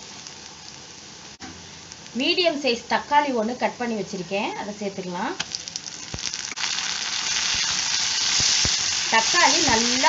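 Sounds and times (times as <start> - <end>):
food sizzling in hot oil: 0.0 - 10.0
oil spattering crackles: 5.4 - 10.0.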